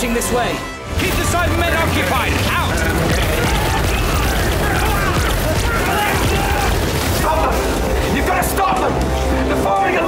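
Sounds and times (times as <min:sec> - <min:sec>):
indistinct shouting voices: 0:01.0 - 0:10.0.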